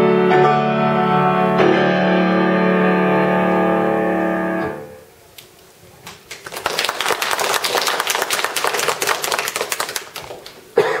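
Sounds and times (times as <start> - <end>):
audience applauding: 6.1 - 10.8.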